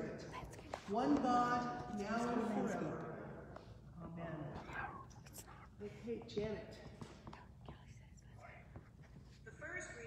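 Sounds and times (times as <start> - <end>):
faint whispering: 4.5 - 6.1, 7.1 - 9.1.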